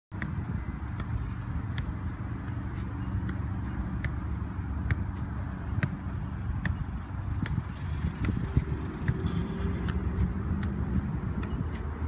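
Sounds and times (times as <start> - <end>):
football kicked: 0.2 - 11.8.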